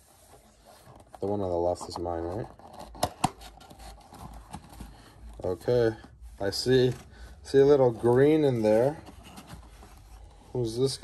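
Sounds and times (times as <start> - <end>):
cardboard scraping and rustling: 0.0 - 11.0.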